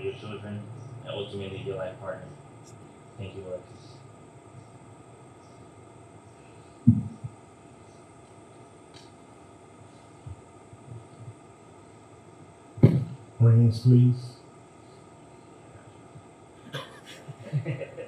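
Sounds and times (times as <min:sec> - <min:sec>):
microphone handling noise: 0:06.8 - 0:07.4, 0:12.8 - 0:13.2.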